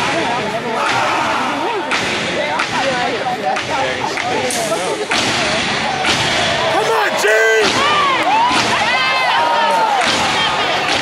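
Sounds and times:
crowd shouting: 0.7s - 1.9s, 5.5s - 11.0s
stomps and hand claps: 1.9s - 11.0s.

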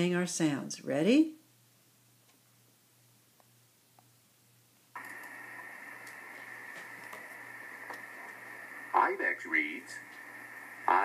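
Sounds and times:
electronic hiss with high tone: 5.0s - 11.0s.

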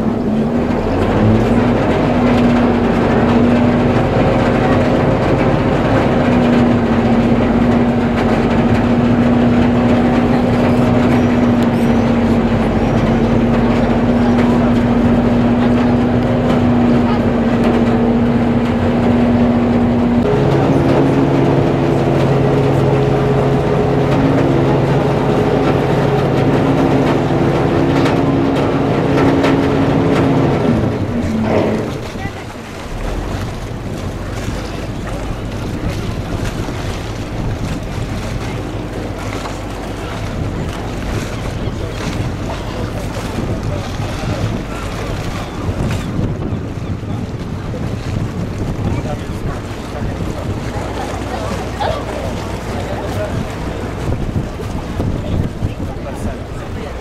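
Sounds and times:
ship engine droning: 0.0s - 57.0s
wind and water rushing: 0.0s - 57.0s.

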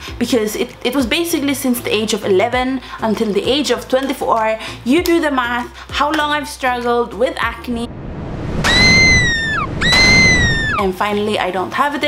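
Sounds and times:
low rumble: 7.5s - 10.8s
shrill shrieks: 8.5s - 10.9s.

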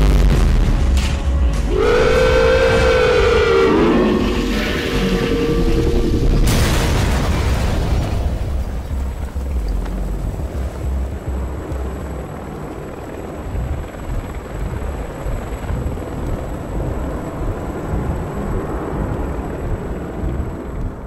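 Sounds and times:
heavy low rumble: 0.0s - 21.0s
helicopter rotor noise: 1.7s - 6.4s, 9.0s - 21.0s.

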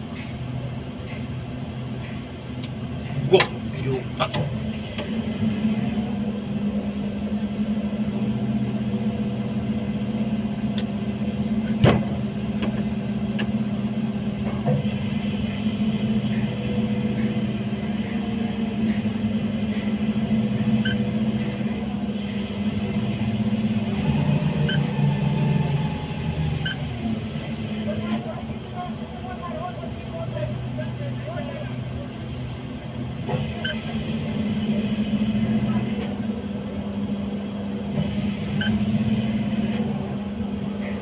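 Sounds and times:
industrial machinery humming: 0.0s - 41.0s.

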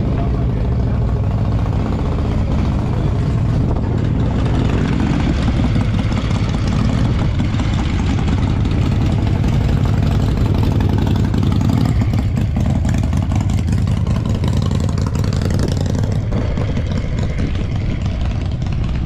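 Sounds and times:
loud engine idling: 0.0s - 19.0s.

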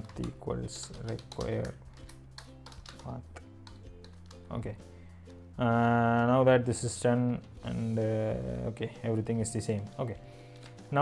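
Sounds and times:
keyboard typing clicks: 0.0s - 4.4s
soft background music: 0.0s - 11.0s.

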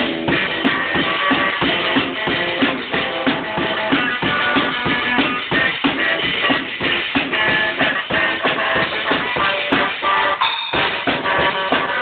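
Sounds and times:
band playing live: 0.0s - 12.0s
drum kit fast steady rhythm: 0.0s - 12.0s.

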